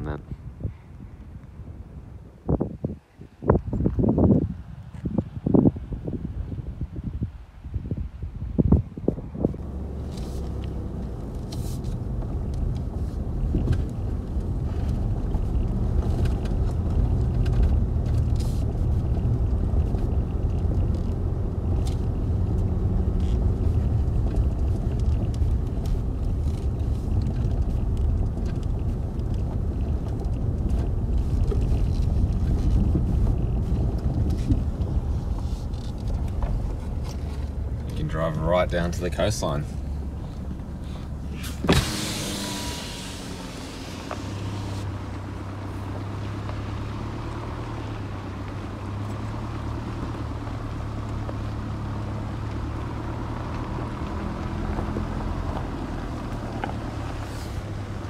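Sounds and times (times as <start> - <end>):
car road rumble on gravel: 0.0 - 58.0.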